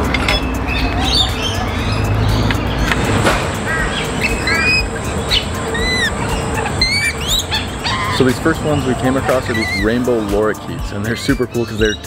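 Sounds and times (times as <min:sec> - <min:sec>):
parrots chirping and squawking: 0:00.0 - 0:12.0
thin steady high tone: 0:03.6 - 0:12.0.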